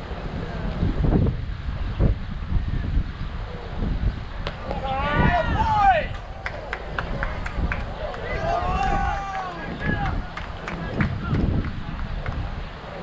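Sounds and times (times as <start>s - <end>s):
wind rumble on microphone: 0.0s - 13.0s
voices shouting: 4.6s - 7.0s, 7.8s - 11.4s.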